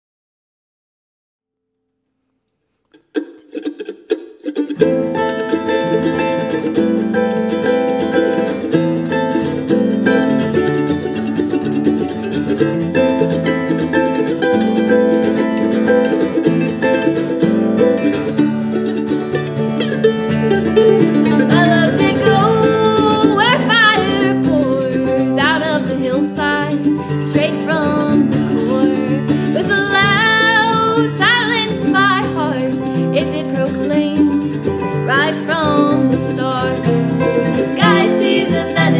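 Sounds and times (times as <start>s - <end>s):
acoustic guitar: 2.2s - 38.9s
mandolin: 2.9s - 38.9s
person singing: 21.2s - 38.9s.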